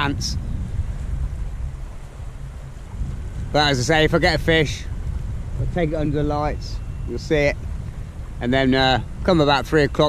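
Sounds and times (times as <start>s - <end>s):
low rumbling microphone noise: 0.0s - 10.0s.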